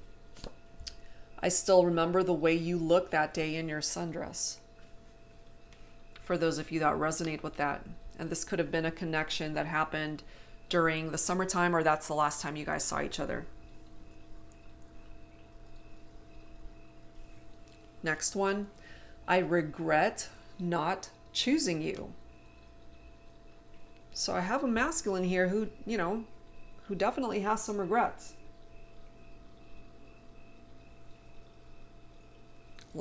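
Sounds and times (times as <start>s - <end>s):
faint steady hum: 0.0s - 33.0s
thin steady tones: 0.0s - 33.0s.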